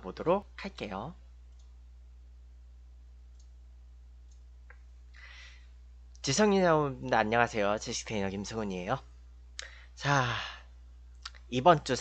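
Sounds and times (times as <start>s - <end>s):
low electrical hum: 0.0s - 12.0s
faint clicks: 1.5s - 1.8s, 3.3s - 3.6s, 4.2s - 5.2s.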